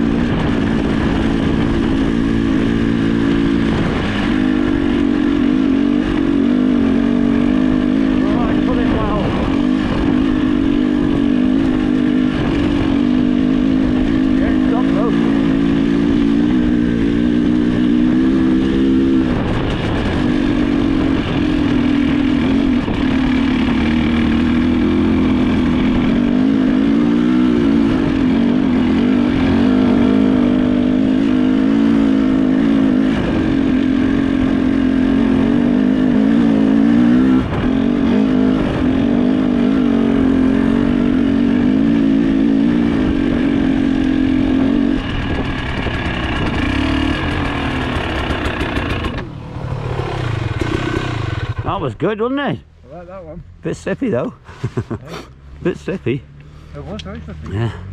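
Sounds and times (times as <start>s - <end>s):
motorcycle engine running: 0.0s - 57.9s.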